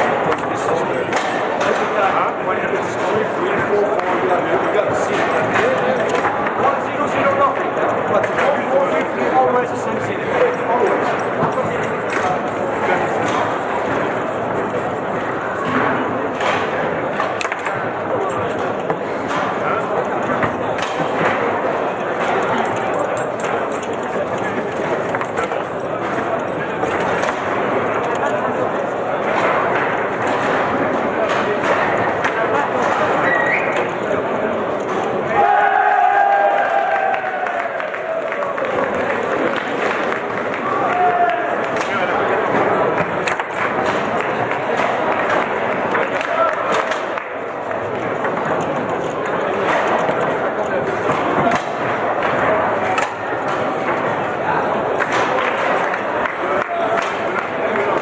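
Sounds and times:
table football clacks and knocks: 0:00.0 - 0:35.9, 0:36.6 - 0:58.0
babble of many voices: 0:00.0 - 0:58.0.

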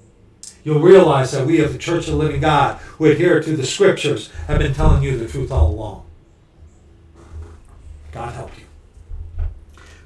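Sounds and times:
steady low hum: 0:00.0 - 0:10.0
soft breath: 0:02.8 - 0:03.0, 0:09.7 - 0:10.0.

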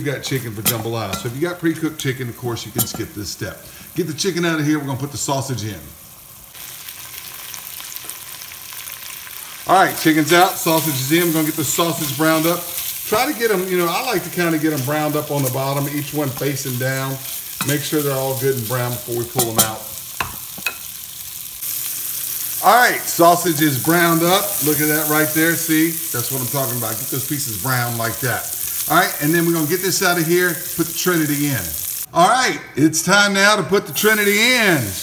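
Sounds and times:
meat sizzling in hot fat: 0:00.0 - 0:32.1, 0:33.9 - 0:35.0.

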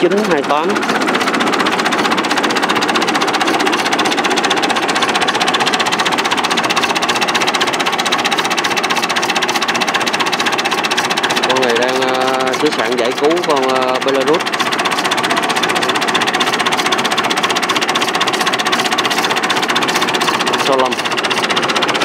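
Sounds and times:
diesel tractor engine idling: 0:00.0 - 0:22.0.

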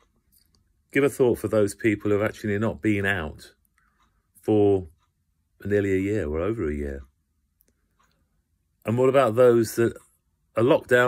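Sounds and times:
man speaking: 0:00.9 - 0:03.6, 0:04.4 - 0:05.0, 0:05.6 - 0:07.2, 0:08.8 - 0:11.0
faint clicks: 0:07.0 - 0:08.9.

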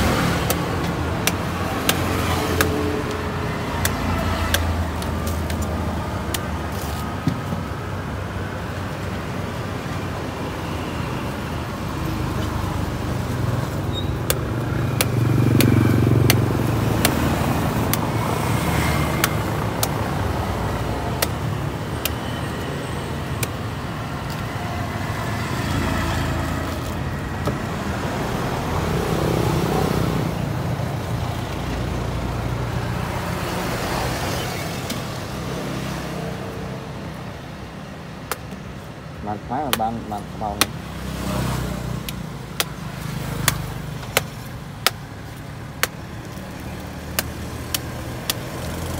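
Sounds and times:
vehicles passing: 0:00.0 - 0:48.9.

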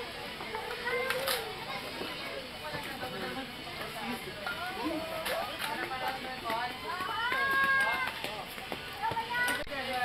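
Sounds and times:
soft talking voices: 0:00.0 - 0:10.0.

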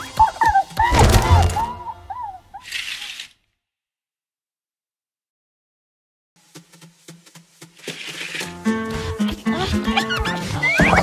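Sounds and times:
thud: 0:00.9 - 0:01.9
cartoon music: 0:00.9 - 0:02.4.

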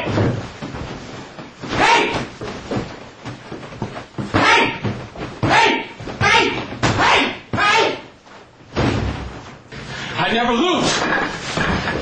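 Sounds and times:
man's high-pitched yell: 0:01.7 - 0:02.2, 0:04.3 - 0:04.8, 0:05.4 - 0:08.1.

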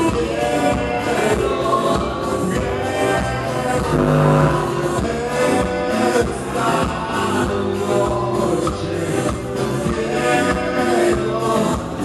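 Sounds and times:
live band playing: 0:03.9 - 0:05.0
person singing: 0:03.9 - 0:05.2.

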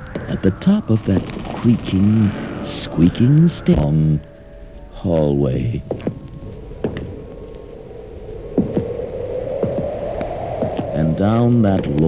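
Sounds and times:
droning hum from record: 0:00.0 - 0:12.0
record surface crackle: 0:00.0 - 0:12.0.

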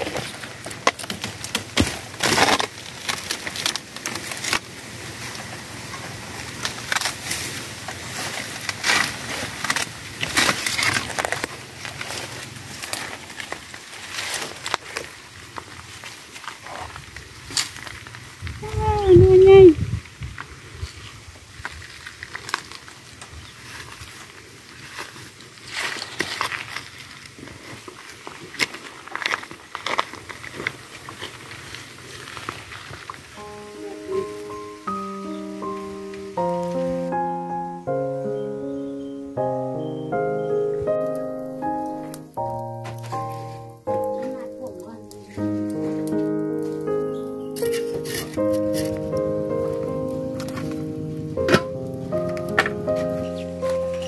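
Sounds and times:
dry bamboo crackling and rustling: 0:00.0 - 0:37.9, 0:39.8 - 0:54.0.

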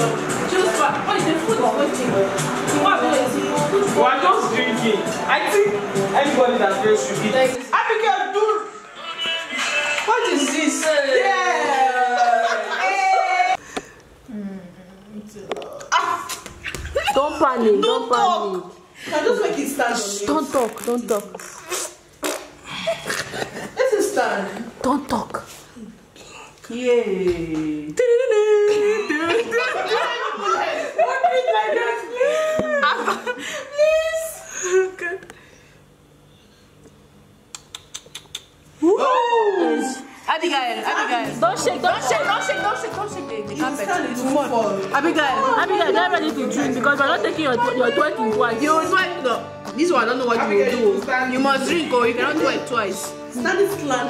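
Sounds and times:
women shrieking and squealing: 0:38.8 - 0:40.1.

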